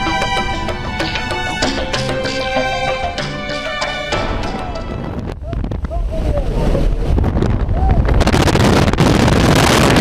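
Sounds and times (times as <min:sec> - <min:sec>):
airplane engine drone: 0:00.0 - 0:04.9
wind buffeting microphone: 0:04.2 - 0:10.0.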